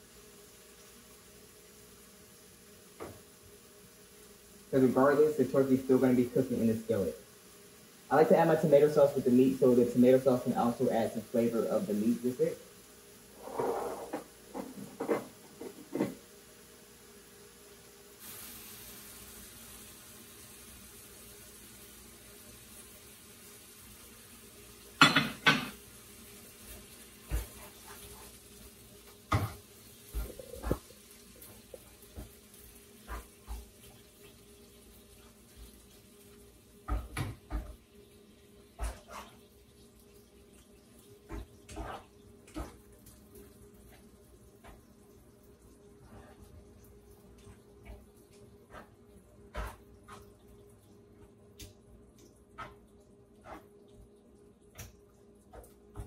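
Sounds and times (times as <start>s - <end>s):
spatula scraping a skillet: 13.3s - 16.2s, 26.5s - 34.1s, 38.8s - 39.5s, 41.3s - 42.8s, 48.7s - 50.3s, 53.4s - 53.7s.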